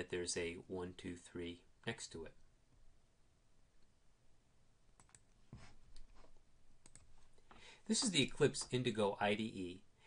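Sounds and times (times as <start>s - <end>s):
computer mouse clicks: 5.0s - 6.1s, 6.8s - 7.1s.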